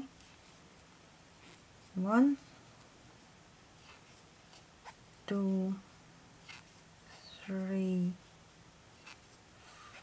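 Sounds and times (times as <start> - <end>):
crochet hook scratching yarn: 0.0 - 2.4, 3.8 - 10.0.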